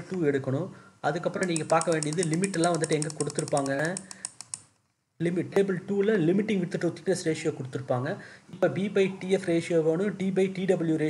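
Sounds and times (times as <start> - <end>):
mouse scroll wheel clicking: 1.4 - 4.8.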